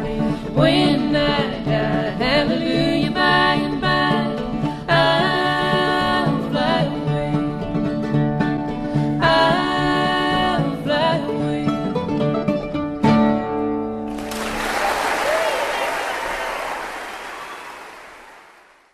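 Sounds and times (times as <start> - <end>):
bluegrass band with banjo and guitar: 0.0 - 14.2.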